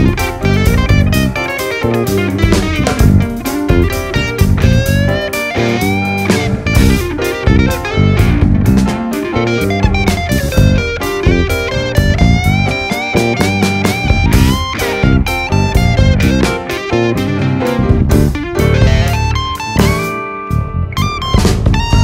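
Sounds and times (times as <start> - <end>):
bass guitar: 0.0 - 22.0
drums: 0.0 - 22.0
sliding electric guitar melody: 0.0 - 22.0.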